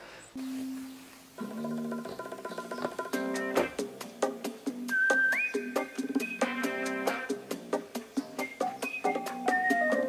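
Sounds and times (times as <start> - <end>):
person whistling: 4.9 - 6.7, 8.4 - 10.0.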